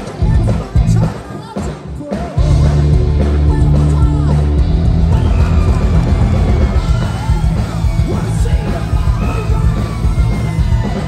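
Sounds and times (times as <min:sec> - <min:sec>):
heavy metal band playing live: 0:00.0 - 0:11.0.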